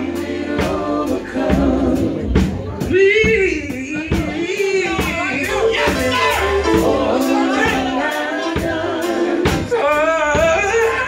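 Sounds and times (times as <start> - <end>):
band playing: 0.0 - 11.0
drum strikes: 0.0 - 11.0
gospel singing: 0.0 - 11.0.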